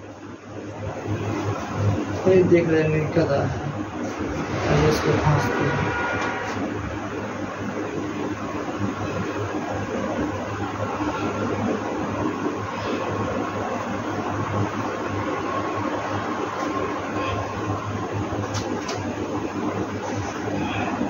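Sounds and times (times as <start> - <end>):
continuous rushing noise: 0.0 - 21.0.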